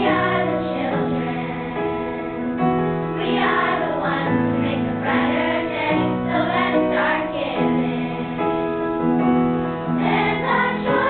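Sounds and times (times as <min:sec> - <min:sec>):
children's chorus singing: 0:00.0 - 0:02.5, 0:03.2 - 0:08.6, 0:10.0 - 0:11.0.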